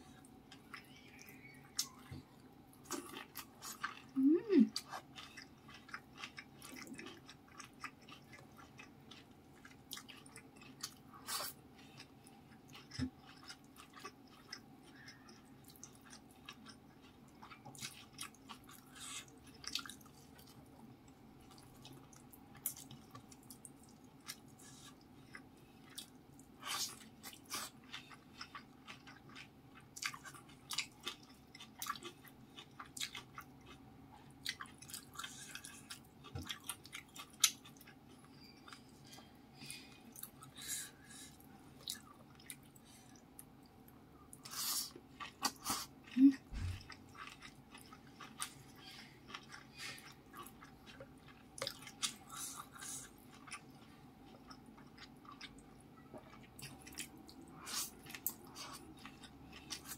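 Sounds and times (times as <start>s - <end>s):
wet chewing and mouth smacks: 21.4s - 39.3s, 44.3s - 59.9s.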